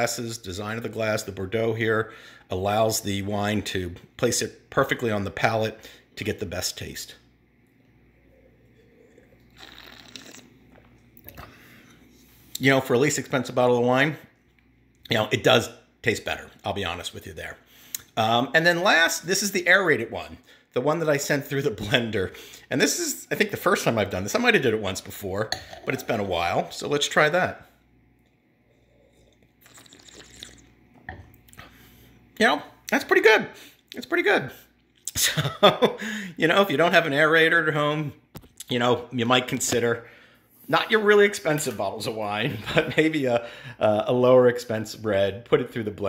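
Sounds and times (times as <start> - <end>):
slurping wine from a glass: 8.2 - 12.2, 28.6 - 30.7.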